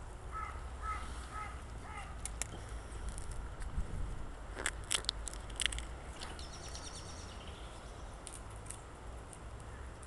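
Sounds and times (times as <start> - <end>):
bird calling: 0.3 - 2.2.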